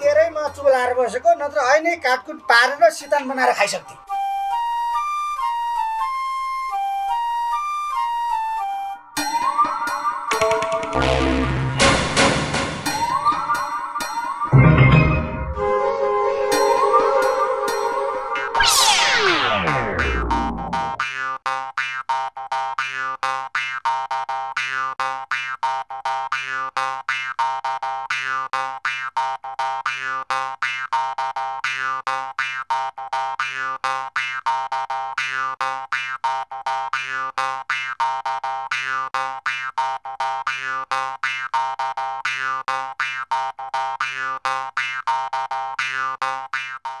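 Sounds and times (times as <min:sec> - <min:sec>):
instrumental music: 0:03.8 - 0:47.0.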